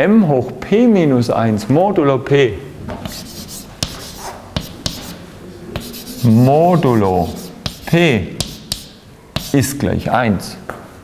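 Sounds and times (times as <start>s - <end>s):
chalk scratching on blackboard: 3.0s - 5.2s, 5.8s - 10.2s
chalk tapping on blackboard: 3.0s - 5.2s, 5.8s - 10.2s.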